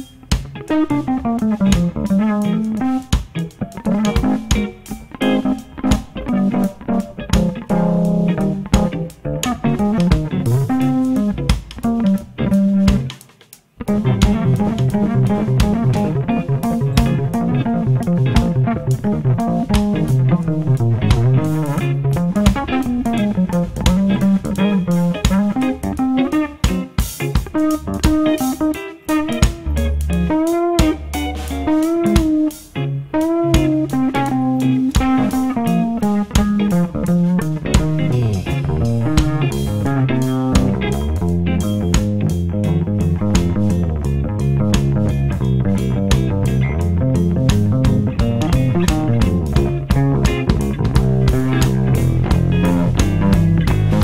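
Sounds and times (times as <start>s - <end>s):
drums: 0.0s - 54.0s
electric bass guitar melodic lines: 0.0s - 54.0s
electric guitar: 0.0s - 54.0s.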